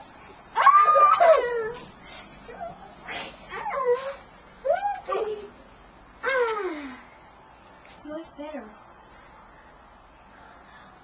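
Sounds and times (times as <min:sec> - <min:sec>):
child whining: 0:06.2 - 0:07.0.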